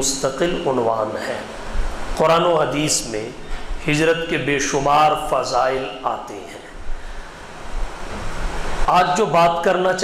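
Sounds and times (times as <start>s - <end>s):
man speaking through microphone: 0.0s - 6.8s, 8.8s - 10.0s
steady hiss: 0.0s - 10.0s.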